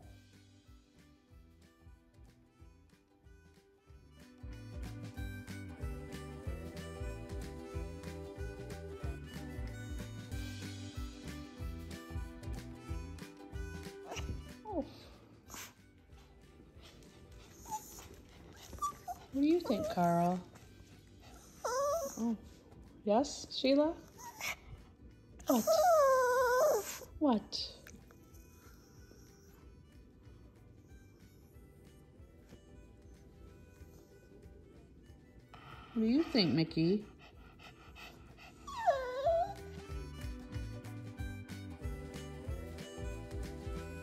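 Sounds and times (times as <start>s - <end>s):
soft background music: 0.0s - 44.0s
dog whimpering: 13.5s - 15.8s, 16.8s - 20.6s, 21.2s - 22.6s, 24.0s - 24.7s, 25.4s - 27.2s, 27.9s - 30.0s, 35.9s - 40.8s.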